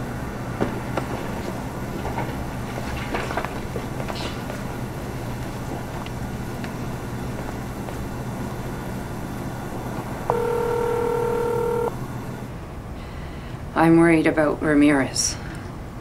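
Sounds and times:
machine shop hum: 0:00.0 - 0:12.9
telephone ringing: 0:10.3 - 0:12.0.

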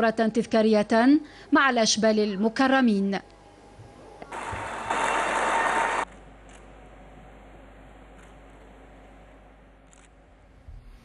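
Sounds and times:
audience applause: 0:04.3 - 0:06.1.

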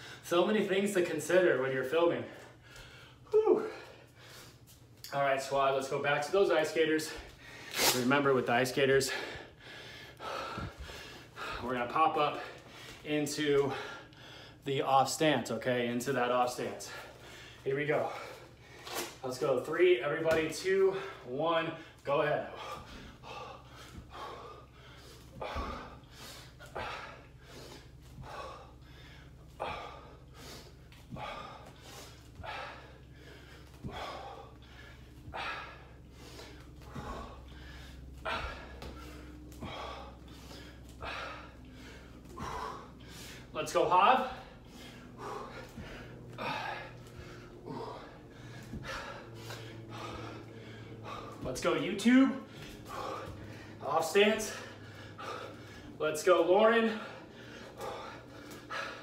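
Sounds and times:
man breathing hard: 0:00.0 - 0:59.0.

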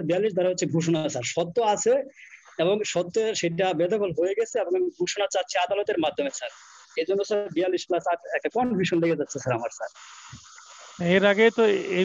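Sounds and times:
faint steady hiss: 0:00.0 - 0:12.0
person speaking: 0:00.0 - 0:12.0.

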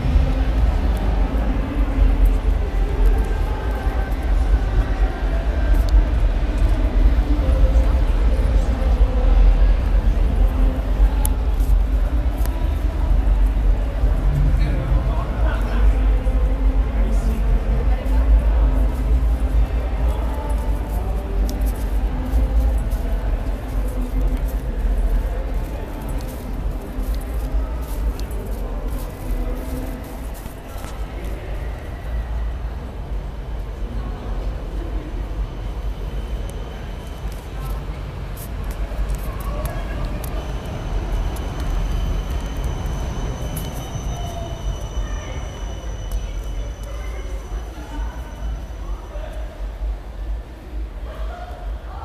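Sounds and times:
low rumble on microphone: 0:00.0 - 0:43.9
passers-by talking: 0:00.0 - 0:52.0
tram running past: 0:00.0 - 0:52.0.

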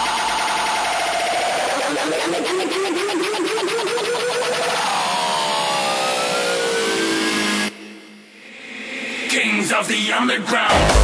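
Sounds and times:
electronic pitch sweep effect: 0:00.0 - 0:08.5.

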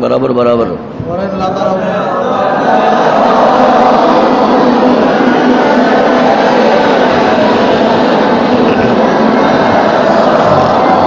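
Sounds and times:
group reciting in unison: 0:01.4 - 0:11.0.

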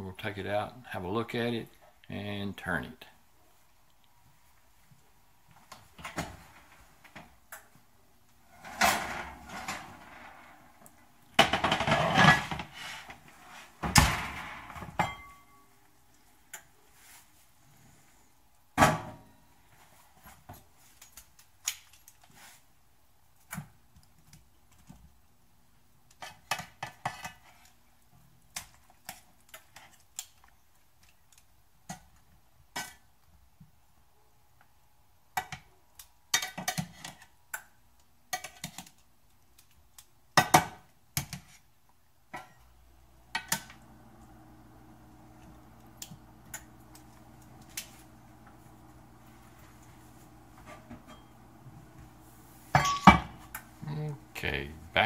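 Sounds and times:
skillet and lid clattering: 0:52.8 - 0:53.4.

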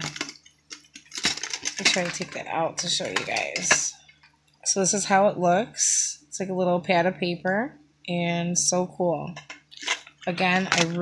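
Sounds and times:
metal tin clicking and clattering: 0:00.0 - 0:03.9.

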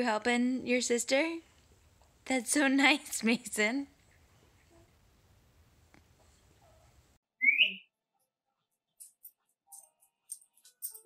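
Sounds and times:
faint room noise: 0:00.0 - 0:07.2
short rising whistle: 0:07.4 - 0:07.8.

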